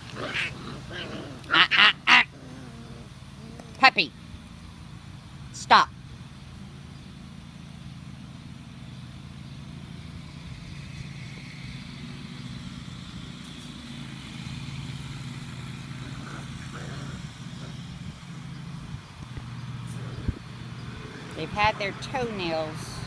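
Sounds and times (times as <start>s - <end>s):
faint outdoor background: 0.0s - 23.0s
low motor hum: 0.0s - 23.0s.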